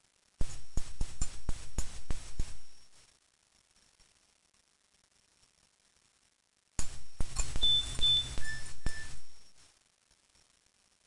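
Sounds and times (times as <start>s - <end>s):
phone rattling buzz: 6.9s - 9.5s
short high beeps: 7.4s - 9.5s.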